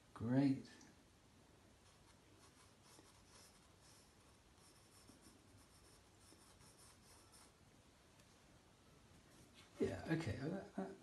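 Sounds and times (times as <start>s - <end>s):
pencil scratching on paper: 1.8s - 7.6s.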